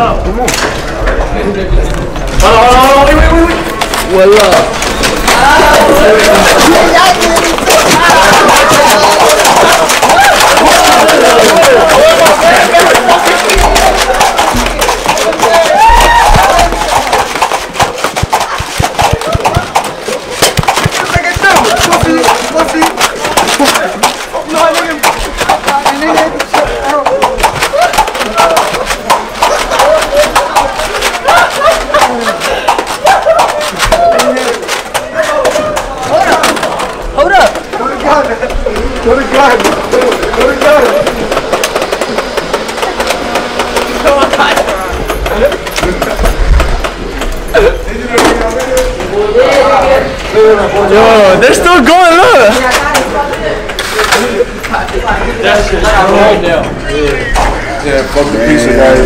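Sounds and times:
faint voices: 0:00.0 - 0:59.0
foam blasters clacking: 0:03.0 - 0:49.1
people shouting: 0:04.4 - 0:37.6.

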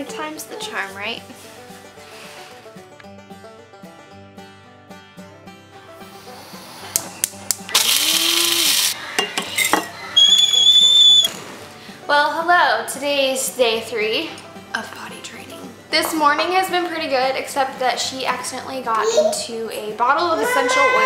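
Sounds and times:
background music: 0:00.0 - 0:21.0
small appliance whirring: 0:06.2 - 0:09.0.

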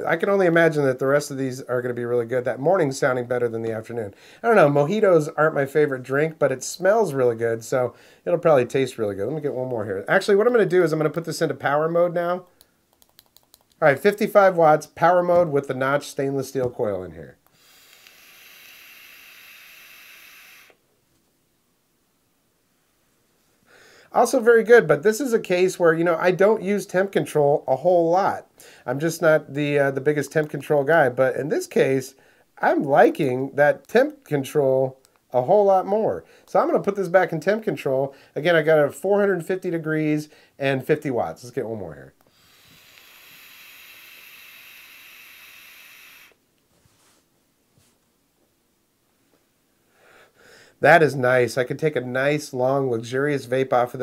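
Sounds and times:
vape hiss of air: 0:17.5 - 0:20.8, 0:42.2 - 0:46.4.

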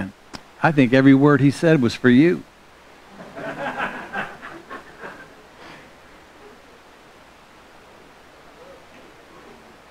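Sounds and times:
soft laughter: 0:03.1 - 0:06.8.

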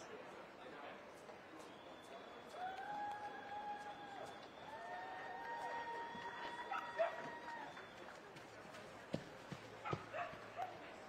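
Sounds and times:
dog barking: 0:09.8 - 0:10.7.

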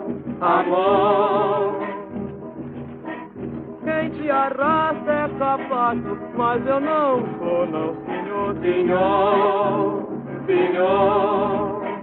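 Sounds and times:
old record of samba with singer: 0:00.0 - 0:12.0.

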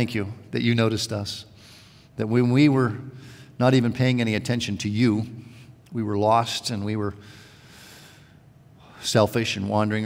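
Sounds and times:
man drawing a breath: 0:01.6 - 0:02.2, 0:07.2 - 0:08.5.

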